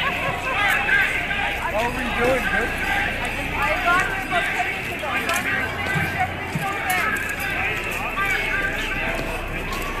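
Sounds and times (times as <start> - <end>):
footsteps on pavement: 0.0 - 10.0
people talking at once: 0.0 - 10.0.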